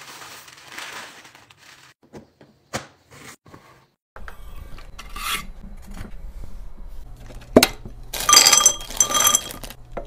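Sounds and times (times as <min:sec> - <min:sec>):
chocolates rattling into glass jar: 0:08.2 - 0:09.8
glass jar ringing: 0:08.2 - 0:09.8.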